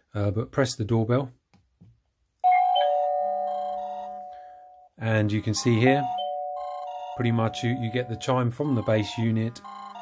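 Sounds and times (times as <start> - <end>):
doorbell chime: 2.4 - 4.9, 5.6 - 10.0.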